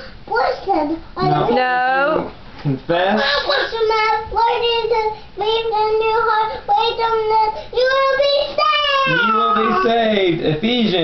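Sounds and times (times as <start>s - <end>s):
toddler reciting in sing-song: 0.0s - 1.6s, 3.7s - 9.9s.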